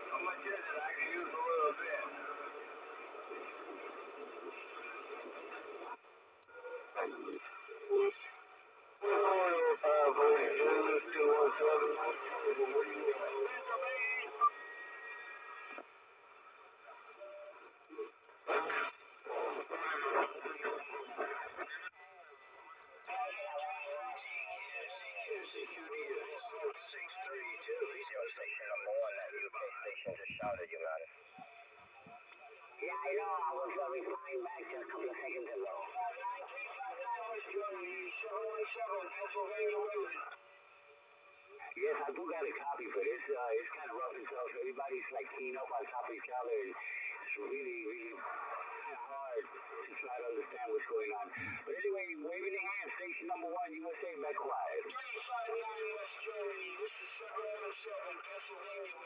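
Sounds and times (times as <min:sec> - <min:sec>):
voices through radio speaker: 0:00.0 - 0:59.0.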